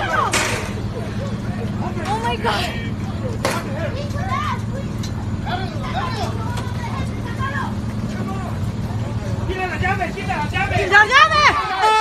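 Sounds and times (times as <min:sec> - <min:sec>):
truck engine idling: 0:00.0 - 0:12.0
men shouting: 0:09.2 - 0:12.0.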